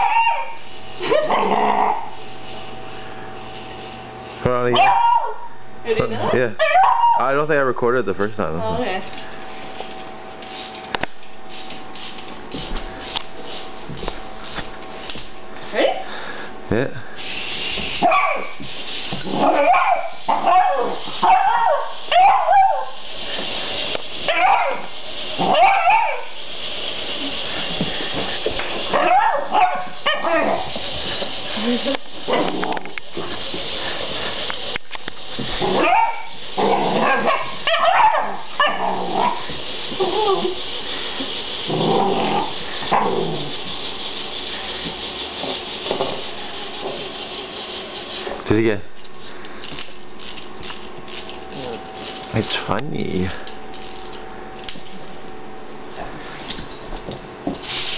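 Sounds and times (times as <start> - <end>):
dog barking: 0.0 - 0.6, 4.8 - 5.6, 18.0 - 18.6, 19.4 - 23.0, 24.3 - 26.3, 29.0 - 30.7, 35.7 - 36.3, 37.0 - 39.4.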